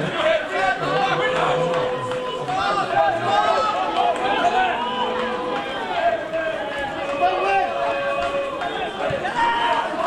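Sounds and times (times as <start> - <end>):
voices shouting and calling: 0.0 - 10.0.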